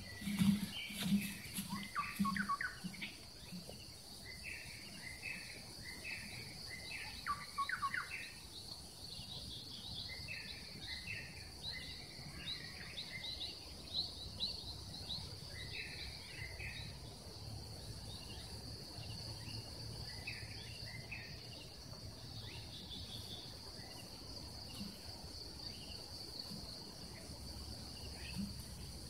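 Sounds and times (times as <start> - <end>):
birds calling: 0.0 - 8.4.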